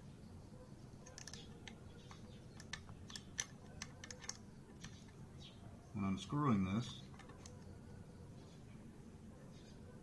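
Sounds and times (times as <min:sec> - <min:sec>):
screwdriver light metallic clicks: 0:01.0 - 0:05.0.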